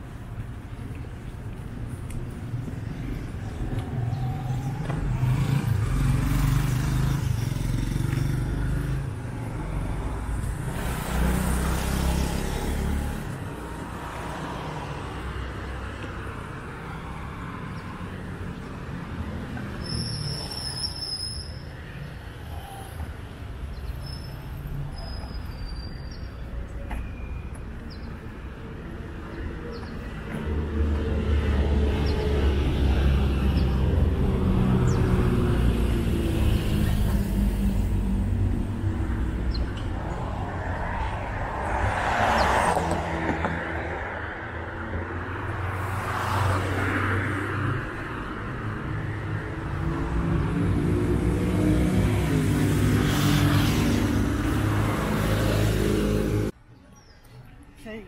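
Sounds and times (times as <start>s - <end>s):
vehicles passing: 0.0s - 58.0s.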